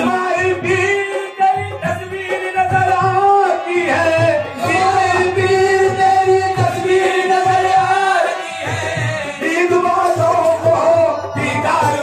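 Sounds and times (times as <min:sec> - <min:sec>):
men singing held notes: 0:00.0 - 0:12.0.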